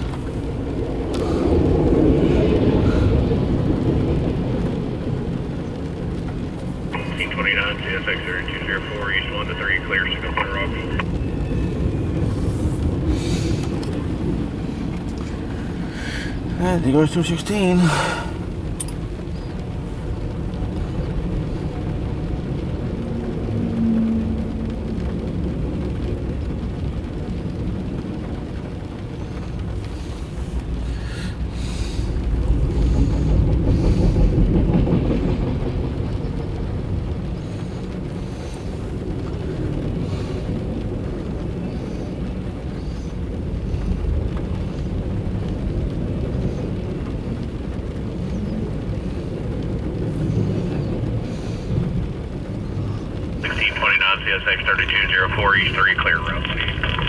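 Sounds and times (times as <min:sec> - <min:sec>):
train wheels rumbling on track: 0:17.8 - 0:53.4.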